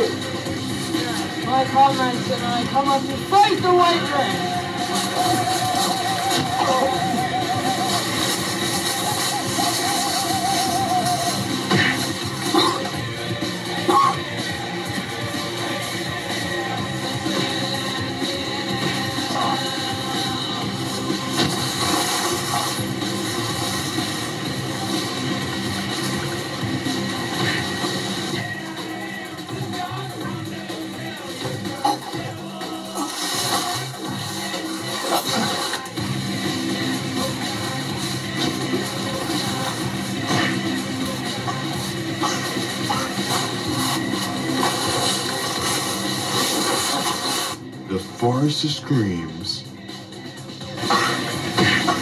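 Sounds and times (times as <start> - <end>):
background music: 0.0 - 52.0.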